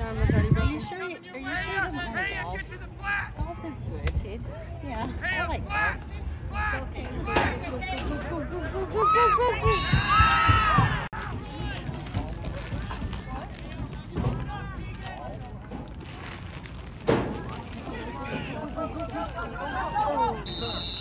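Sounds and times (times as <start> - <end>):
voices of spectators and players: 0.0 - 21.0
referee's whistle blast: 20.4 - 21.0.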